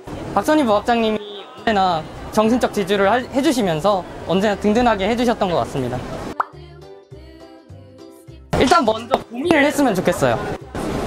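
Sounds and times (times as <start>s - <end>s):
light background music: 0.0s - 11.0s
rising pop sound effect: 6.3s - 6.6s.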